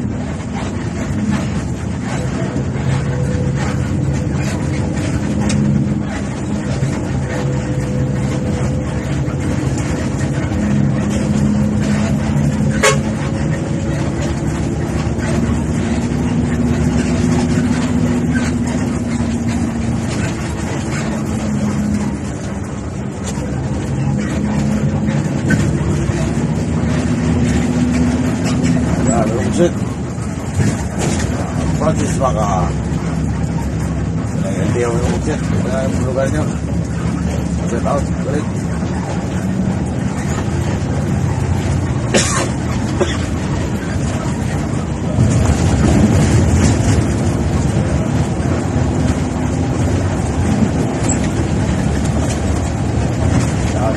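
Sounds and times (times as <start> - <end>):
bus diesel engine running: 0.0 - 53.9.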